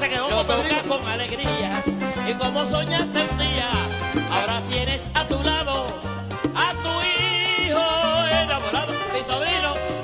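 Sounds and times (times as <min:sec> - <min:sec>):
salsa band playing: 0:00.0 - 0:10.0
upright bass notes: 0:00.0 - 0:10.0.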